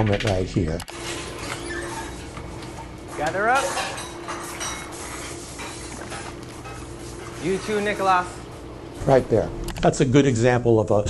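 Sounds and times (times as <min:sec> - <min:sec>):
steady low hum: 0:00.0 - 0:11.0
dishes and cutlery clattering: 0:03.3 - 0:06.9.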